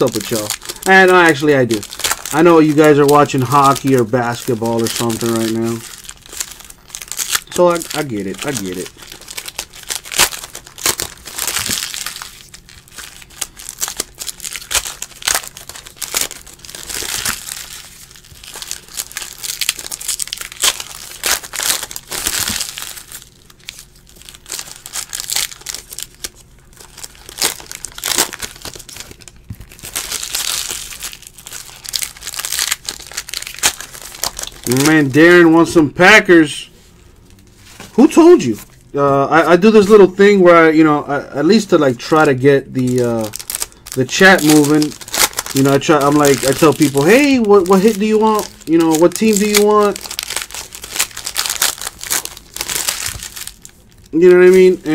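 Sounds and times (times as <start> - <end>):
foil wrappers torn and crinkled: 0.0 - 35.7, 41.4 - 54.9.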